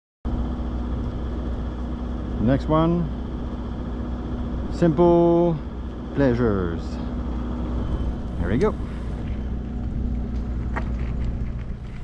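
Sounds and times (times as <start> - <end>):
constant hum: 0.3 - 12.0
steady low rumble: 0.3 - 12.0.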